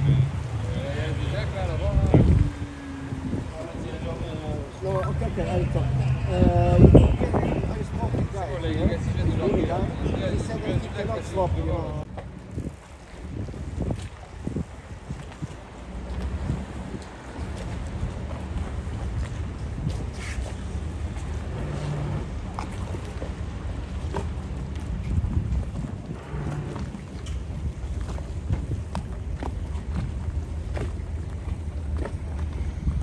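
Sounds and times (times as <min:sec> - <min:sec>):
boat engines rumbling: 0:00.0 - 0:33.0
wind on microphone: 0:00.0 - 0:33.0.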